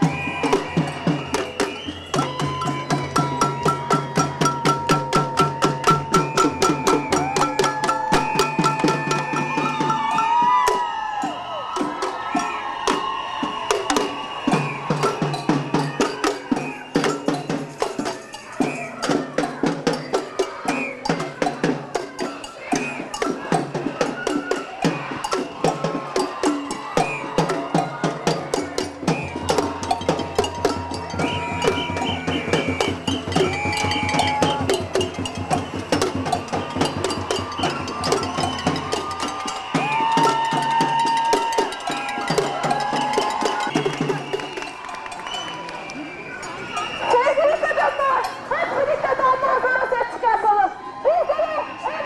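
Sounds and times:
whistle blasts: 0.0 - 4.0, 5.2 - 10.3, 12.4 - 17.4, 18.4 - 19.2, 20.6 - 21.2, 22.5 - 23.2, 26.8 - 28.0, 29.0 - 48.4
drums beaten with sticks: 0.0 - 44.7
crowd voices: 0.0 - 52.0.

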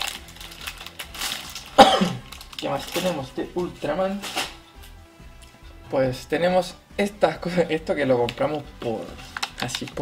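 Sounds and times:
person coughing: 1.8 - 2.3.

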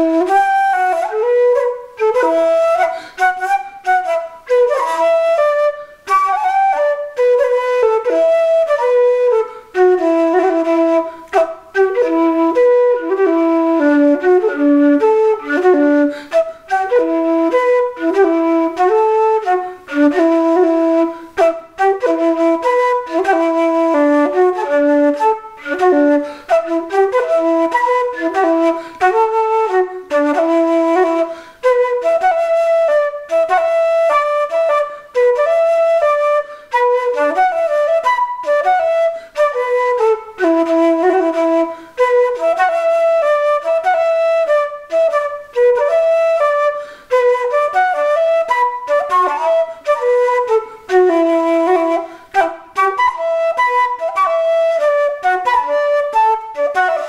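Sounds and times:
wooden flute melody: 0.0 - 57.0.

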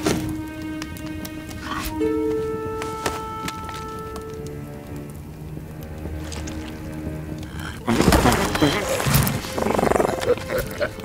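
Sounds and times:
creature rattling growl: 7.6 - 10.7.

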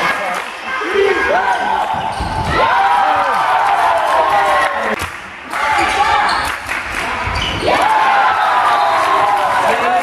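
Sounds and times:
people shouting: 0.7 - 6.4, 7.0 - 10.0.

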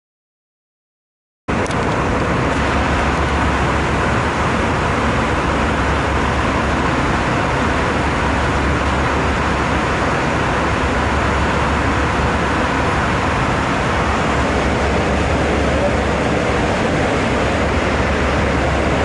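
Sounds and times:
airliner cabin drone: 1.5 - 19.0.

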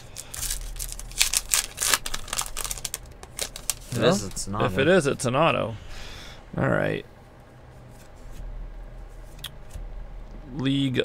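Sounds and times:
card pack wrapper tearing: 0.0 - 4.1
cards rustling: 0.0 - 4.6.

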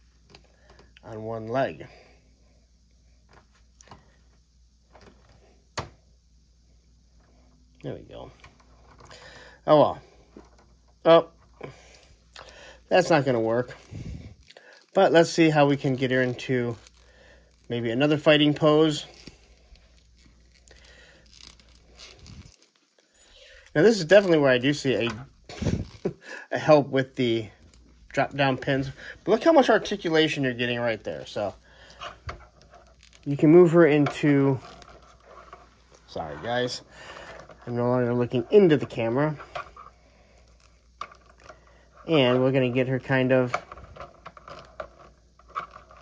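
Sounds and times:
low background hum: 0.0 - 46.0
handling plastic action figure: 38.3 - 46.0.

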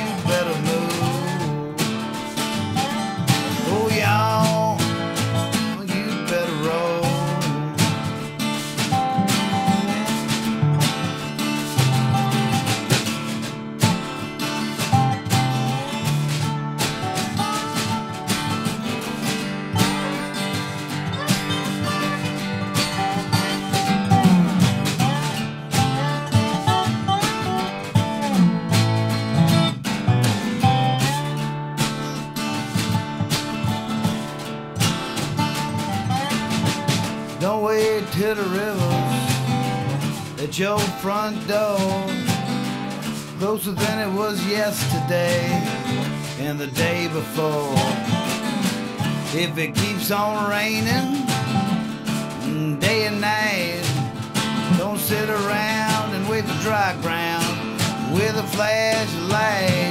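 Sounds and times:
person singing: 0.0 - 29.0, 30.6 - 34.4, 35.0 - 59.9
dobro slide lead: 0.0 - 59.9
snare drum keeping time: 0.0 - 59.9
strummed acoustic guitar: 0.0 - 59.9.

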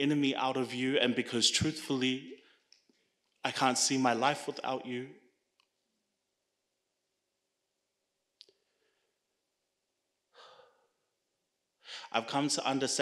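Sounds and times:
breath into a microphone: 8.6 - 9.2, 10.3 - 11.0, 11.8 - 12.2.

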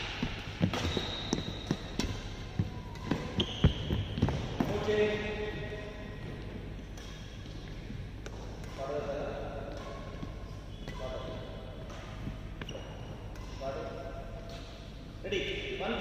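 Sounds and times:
steady low hum: 0.0 - 16.0
voices echoing in sports hall: 0.0 - 16.0.

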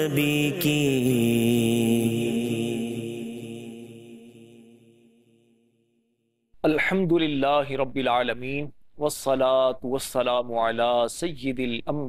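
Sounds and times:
person singing devotional chant: 0.0 - 5.0.

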